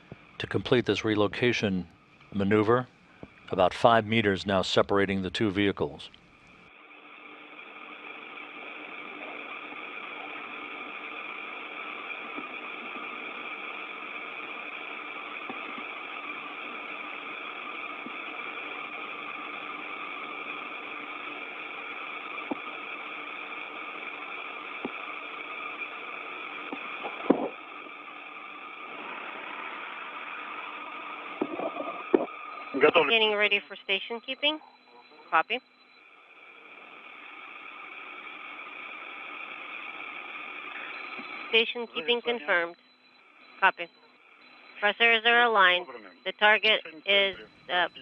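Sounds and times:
faint steady tones: 0.0s - 48.0s
radio hiss and hum: 0.0s - 48.0s.

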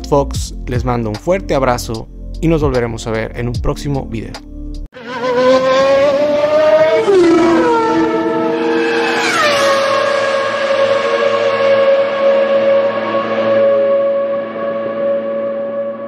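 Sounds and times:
rising and dropping pitched tone: 5.0s - 16.0s.

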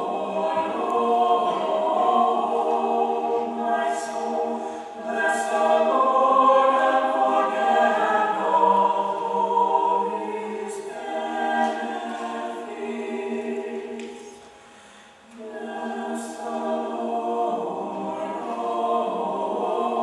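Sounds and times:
mixed choir singing chords: 0.0s - 20.0s.

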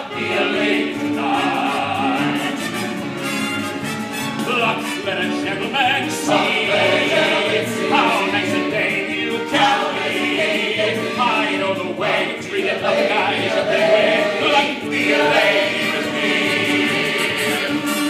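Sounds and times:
male chorus singing: 0.0s - 3.0s, 4.5s - 18.0s
instrumental accompaniment: 0.0s - 18.0s.

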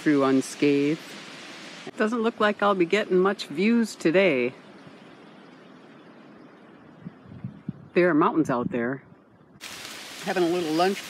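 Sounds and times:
faint outdoor hiss: 0.0s - 11.0s.

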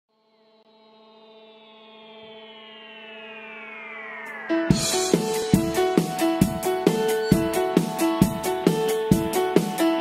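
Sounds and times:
synthesizer chord with gliding tones: 0.1s - 10.0s.

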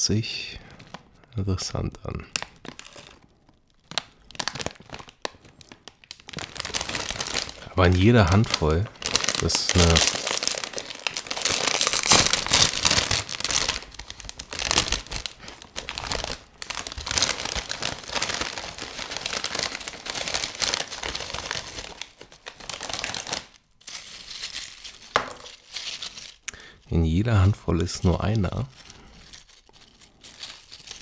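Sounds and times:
chip bag tearing and crinkling: 1.7s - 26.7s, 27.8s - 31.0s.

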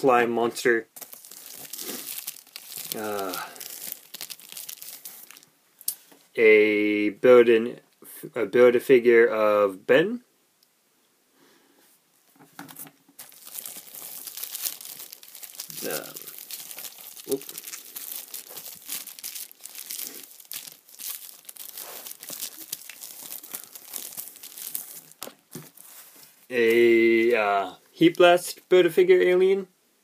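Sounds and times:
plastic packaging crackling: 1.0s - 5.5s, 12.7s - 26.8s.

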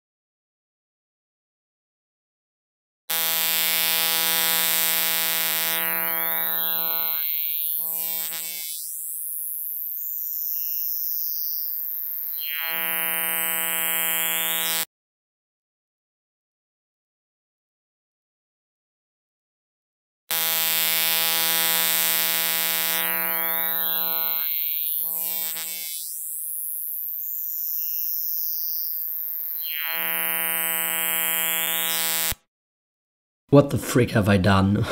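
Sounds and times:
steady buzzing tone with hiss: 3.1s - 14.9s, 20.3s - 32.4s
pitched synthetic drone: 20.3s - 26.1s.

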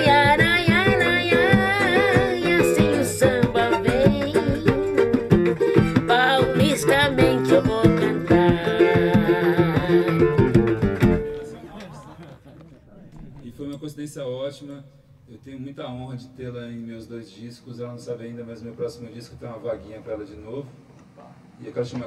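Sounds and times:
woman singing: 0.0s - 11.4s
plucked guitar: 0.0s - 11.8s
percussion: 0.0s - 14.0s.

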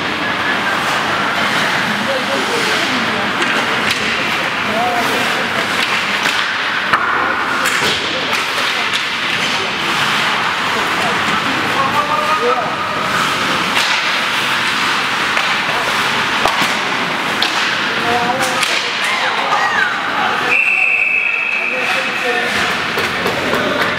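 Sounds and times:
sticks and puck clacking: 0.0s - 20.5s, 21.2s - 23.9s
skates scraping ice: 0.0s - 23.9s
referee's whistle: 20.5s - 21.7s.

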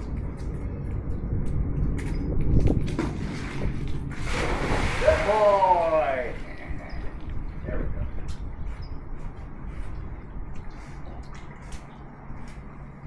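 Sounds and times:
dog splashing into pool: 3.0s - 6.5s.

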